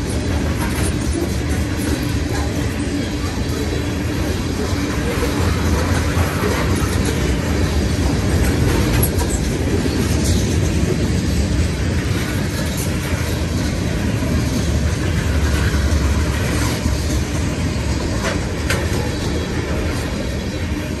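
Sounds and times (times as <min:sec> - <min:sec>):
freight train rolling past: 0:00.0 - 0:21.0.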